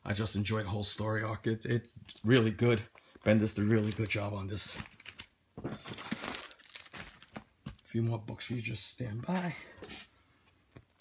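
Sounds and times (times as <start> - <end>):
plastic bags crinkling: 2.0 - 8.0.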